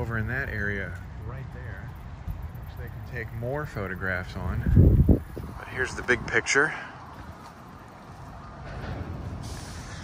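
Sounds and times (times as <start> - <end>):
low outdoor rumble: 0.0 - 10.0.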